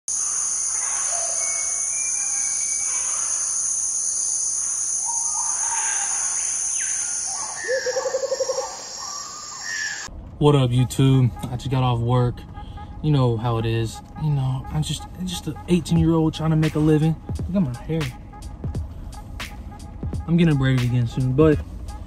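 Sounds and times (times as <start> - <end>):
bird chirps and calls: 0.1 - 10.1
call of rapid even pulses: 0.1 - 10.1
high insect drone: 0.1 - 10.1.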